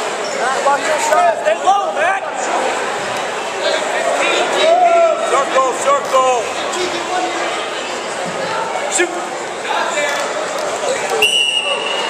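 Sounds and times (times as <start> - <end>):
crowd chatter: 0.0 - 12.0
referee's whistle blast: 11.2 - 12.0.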